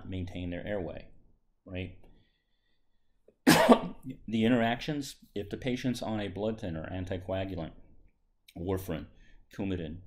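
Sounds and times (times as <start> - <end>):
man coughing: 3.4 - 4.2.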